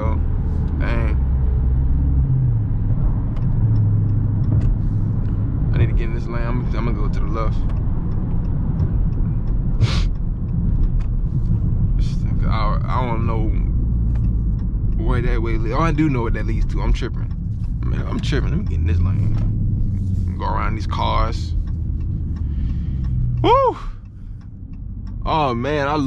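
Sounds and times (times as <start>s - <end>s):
car engine droning in cabin: 0.0s - 26.0s.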